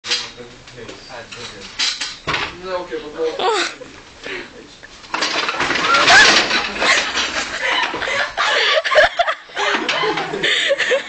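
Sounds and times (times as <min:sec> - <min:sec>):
metal chairs clattering: 0:00.1 - 0:03.4, 0:05.0 - 0:08.3, 0:09.6 - 0:10.5
voices in a small room: 0:00.1 - 0:05.1.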